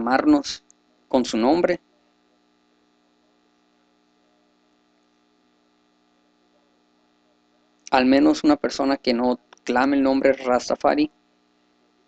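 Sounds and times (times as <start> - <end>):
man's voice: 0.0 - 0.6, 1.2 - 1.8, 7.9 - 11.1
faint electrical hum: 0.0 - 12.0.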